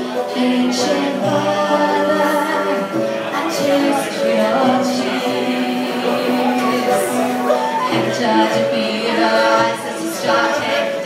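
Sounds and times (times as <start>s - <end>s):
person singing: 0.0s - 11.0s.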